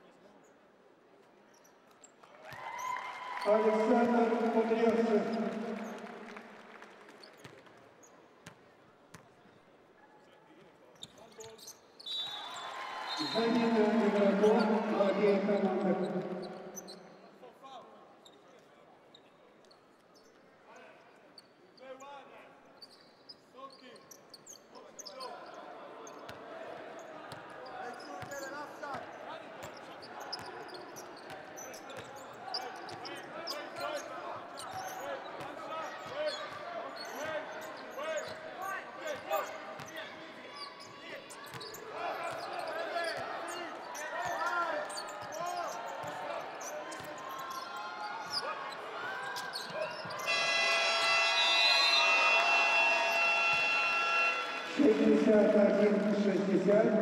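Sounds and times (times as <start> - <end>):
sneakers squeaking: 13.1 - 17.3, 27.4 - 38.5, 40.6 - 52.4
electronic buzzer horn: 50.2 - 54.8.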